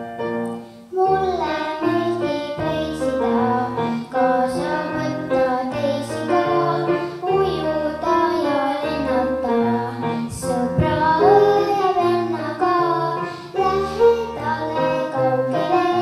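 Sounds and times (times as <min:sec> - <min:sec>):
girl singing into microphone: 0:00.5 - 0:16.0
backing track with bass line: 0:10.3 - 0:11.5.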